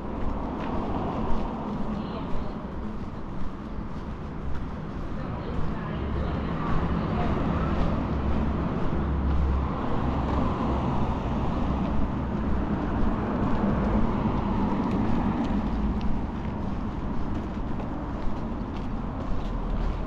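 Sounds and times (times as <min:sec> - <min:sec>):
people's voices: 0:00.0 - 0:20.0
road traffic hum: 0:00.0 - 0:20.0.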